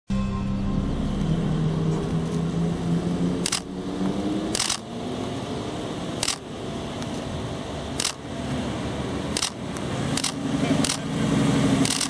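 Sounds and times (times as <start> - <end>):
car engine running at low revs: 0.1 - 12.0
camera shutter clicks: 3.4 - 3.7, 4.6 - 4.8, 8.0 - 8.2, 9.4 - 9.6, 10.2 - 11.0.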